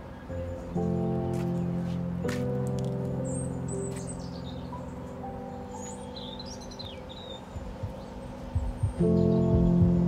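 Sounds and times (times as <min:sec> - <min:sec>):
background music of held chords: 0:00.0 - 0:10.0
birds chirping: 0:00.0 - 0:10.0.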